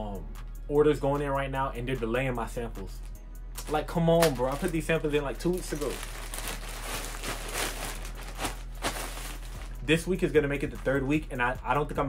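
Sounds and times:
rustling and handling noises: 0:03.0 - 0:10.0.

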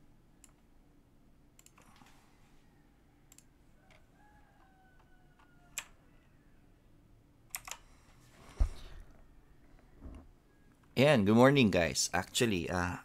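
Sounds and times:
computer clicks and key taps: 0:00.4 - 0:00.7, 0:01.6 - 0:01.9, 0:03.3 - 0:04.0, 0:07.5 - 0:07.8
heavy thump: 0:08.5 - 0:09.0.

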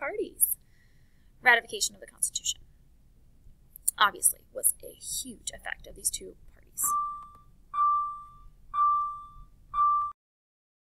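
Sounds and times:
single-pitched beeps: 0:06.8 - 0:10.2.

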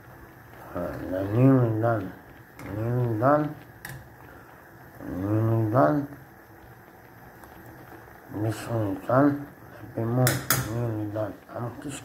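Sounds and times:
water bubbling at a boil: 0:00.0 - 0:12.0.

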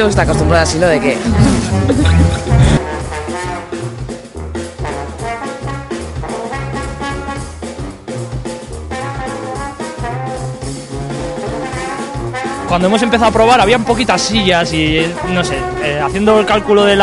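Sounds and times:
drum kit steady beat: 0:00.0 - 0:17.0
trombone melody: 0:00.2 - 0:17.0.

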